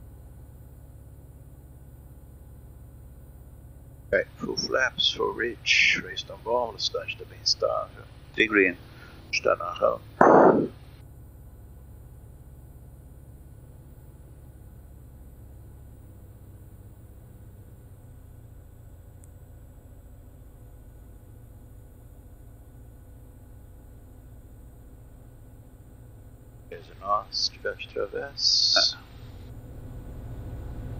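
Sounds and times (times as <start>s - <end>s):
aircraft engine and propeller drone: 4.2s - 10.7s.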